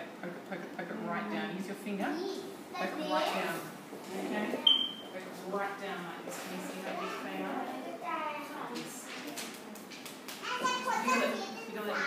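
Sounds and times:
young children talking and calling: 2.1 - 5.0, 6.6 - 12.0.

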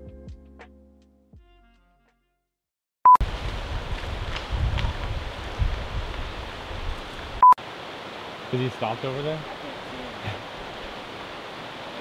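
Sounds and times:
wind rumbling on microphone: 3.2 - 7.4.

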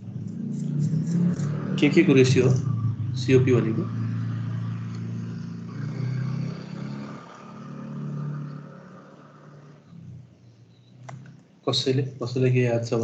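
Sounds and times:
vehicle engine hum: 0.0 - 13.0.

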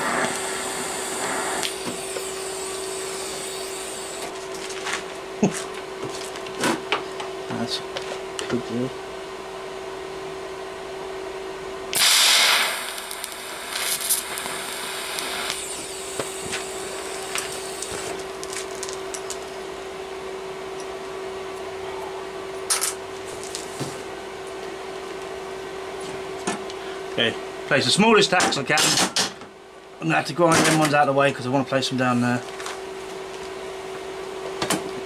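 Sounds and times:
welder arc hissing buzz: 0.0 - 4.7, 11.8 - 19.6
steady hum: 0.0 - 28.9.

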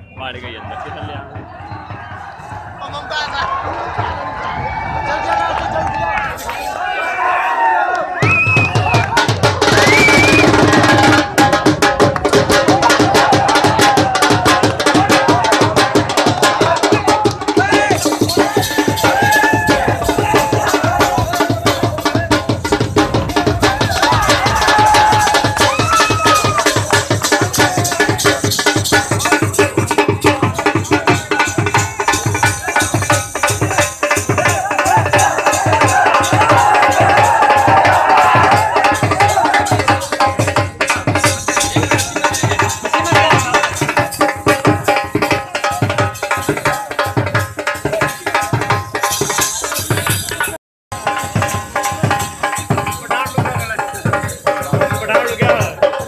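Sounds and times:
music with fast drum beats: 0.0 - 5.0, 8.2 - 56.0
voices: 0.0 - 11.4, 12.0 - 56.0.

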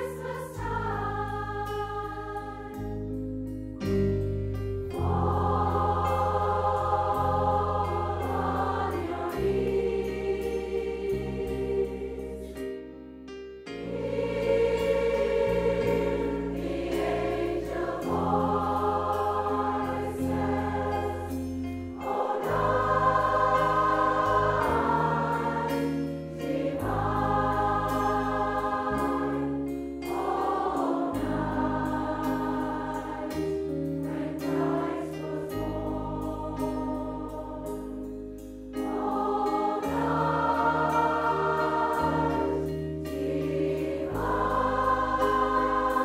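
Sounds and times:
large choir singing: 0.0 - 3.2, 4.9 - 12.8, 13.8 - 46.0.

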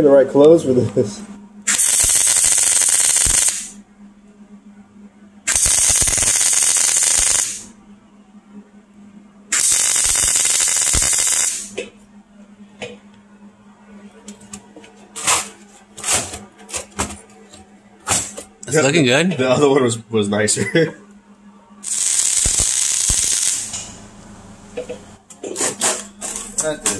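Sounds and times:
welder arc crackling: 1.7 - 3.8, 5.5 - 7.7, 9.5 - 11.7, 21.8 - 24.0
low steady hum: 3.6 - 5.5, 7.5 - 26.9.

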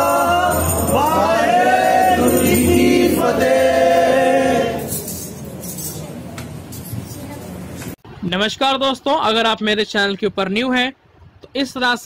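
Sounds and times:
devotional group singing: 0.0 - 5.2
faint clinks: 4.8 - 7.5.

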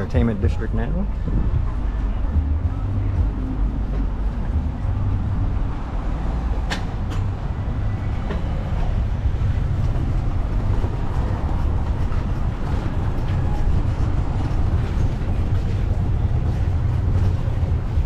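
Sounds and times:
vehicle rumbling over cobblestones: 0.0 - 18.0.

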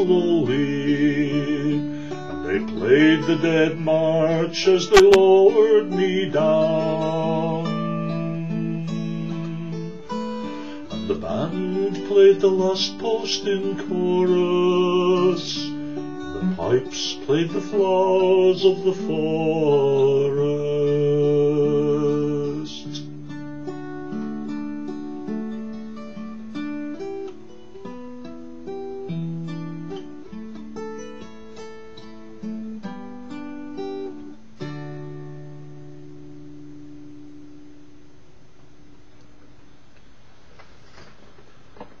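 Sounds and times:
fingerpicked acoustic guitar: 0.0 - 42.0.

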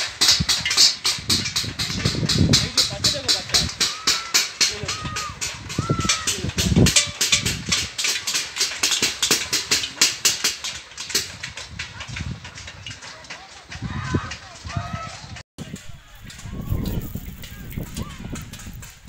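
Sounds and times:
banging on metal plates: 0.0 - 14.9
people shouting: 1.6 - 18.9.

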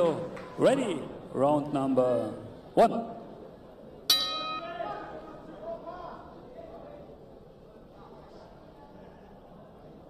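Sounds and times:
boxing ring bell: 4.1 - 4.8.

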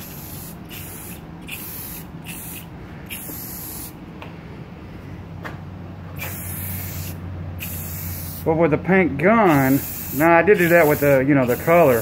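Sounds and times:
aerosol spray hissing: 0.0 - 4.0, 6.2 - 8.5, 9.5 - 12.0.

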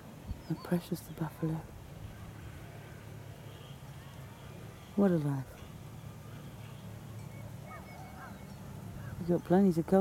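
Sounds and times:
faint bird calls: 6.3 - 9.5.

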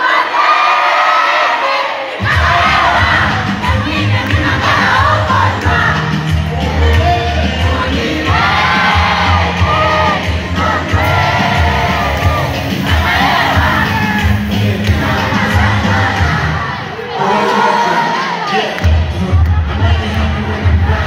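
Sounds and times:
crowd shouting and singing along: 0.0 - 21.0
heavy bass beat: 2.2 - 16.8, 18.8 - 21.0.

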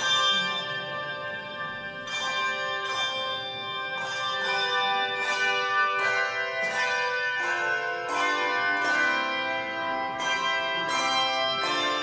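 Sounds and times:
handbell choir playing: 0.0 - 12.0.

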